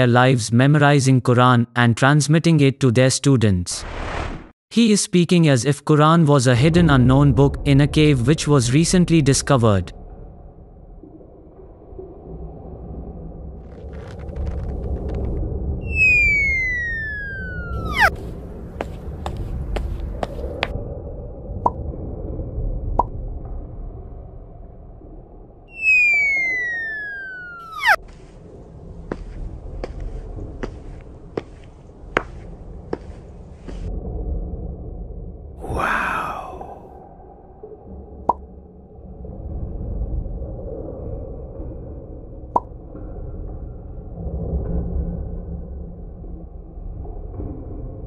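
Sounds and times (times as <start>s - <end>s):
low rumble: 9.8s - 35.6s
cartoon falling whistle: 15.8s - 18.1s, 25.7s - 28.0s.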